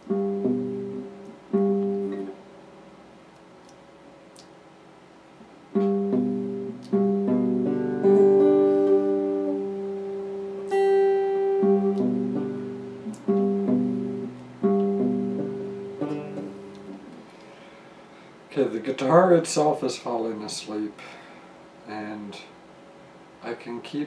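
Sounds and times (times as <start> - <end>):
clean electric guitar played slowly: 0.0 - 2.4, 5.7 - 17.3.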